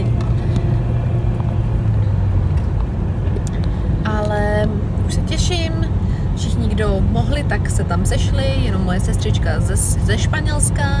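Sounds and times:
car engine and tyre rumble: 0.0s - 11.0s.

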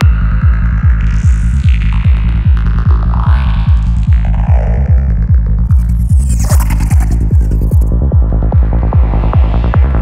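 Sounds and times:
kick drum: 0.0s - 5.9s, 7.4s - 10.0s
rolling bassline: 0.0s - 10.0s.

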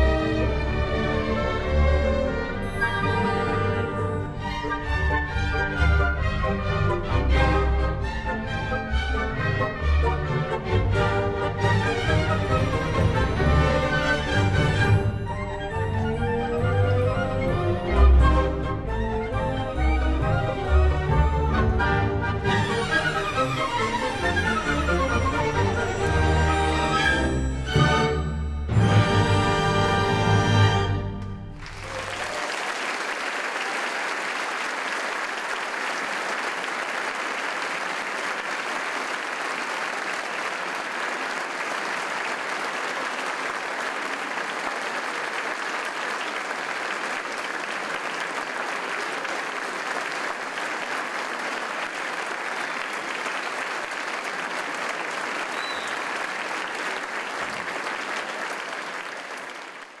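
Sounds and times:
audience applauding: 31.5s - 60.0s.

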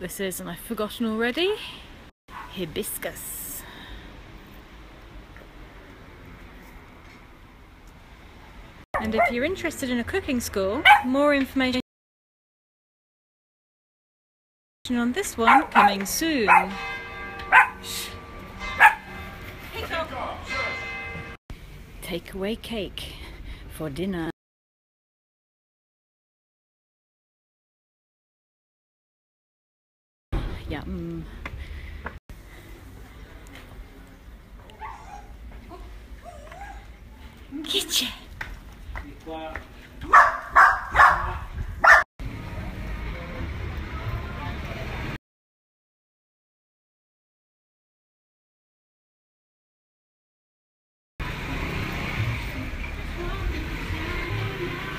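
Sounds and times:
small dog barking: 9.0s - 9.4s, 10.8s - 11.1s, 15.5s - 16.7s, 17.5s - 17.8s, 18.8s - 19.0s, 34.8s - 35.4s, 40.1s - 42.0s.

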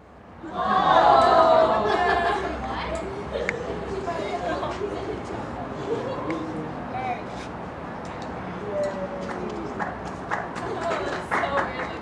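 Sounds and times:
indistinct voices talking: 0.4s - 12.0s.

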